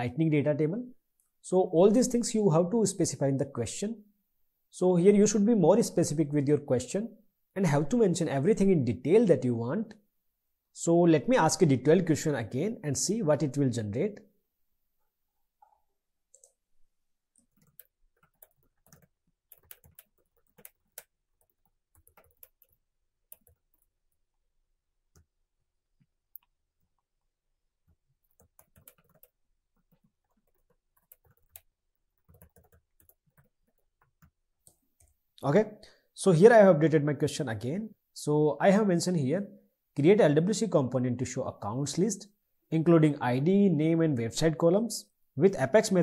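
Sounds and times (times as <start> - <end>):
computer keyboard typing: 17.4 - 24.2, 27.8 - 34.4.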